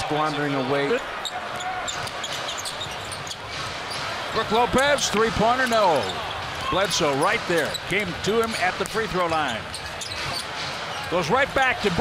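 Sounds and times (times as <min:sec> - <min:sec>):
sneaker squeaks: 0:01.1 - 0:04.3, 0:05.6 - 0:11.2.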